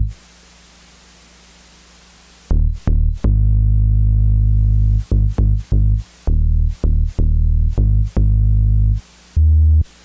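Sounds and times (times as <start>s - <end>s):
faint low hum: 0.0s - 10.0s
steady hiss: 0.0s - 10.0s
deep synth bass note: 2.5s - 9.8s.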